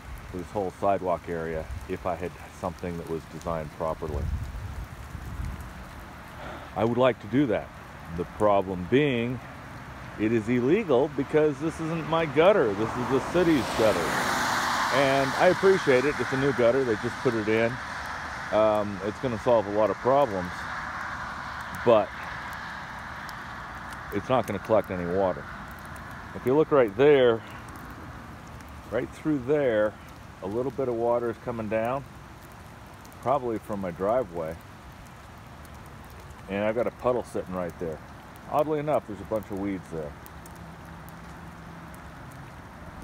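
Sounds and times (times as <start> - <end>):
light rain falling: 0.0 - 43.0.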